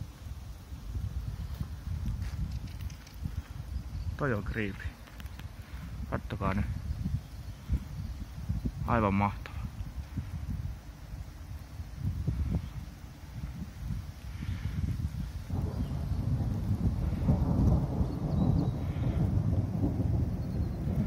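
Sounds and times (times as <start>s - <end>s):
thunder rumbling: 3.2s - 21.0s.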